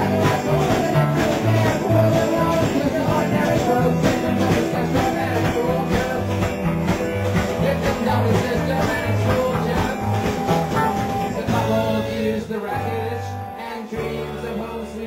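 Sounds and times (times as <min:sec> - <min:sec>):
bass line: 0:00.0 - 0:15.0
drums: 0:00.0 - 0:15.0
man and woman singing: 0:00.0 - 0:15.0
strummed guitar: 0:00.0 - 0:15.0.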